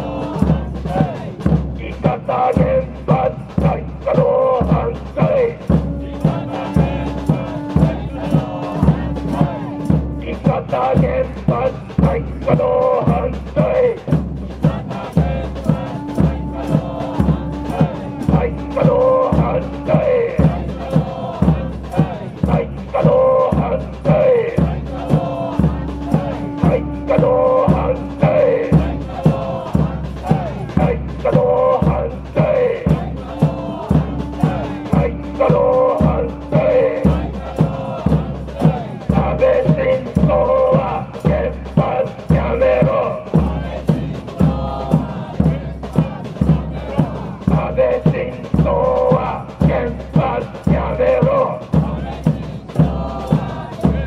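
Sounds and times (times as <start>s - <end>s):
large drum beating: 0.0s - 54.0s
person leading chants over loudspeaker: 0.0s - 54.0s
protesters chanting: 0.0s - 54.0s.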